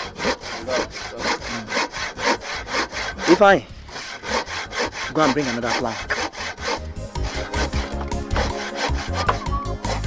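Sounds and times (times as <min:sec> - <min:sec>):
background music: 0:00.0 - 0:10.0
saw cutting wood by hand: 0:00.0 - 0:10.0.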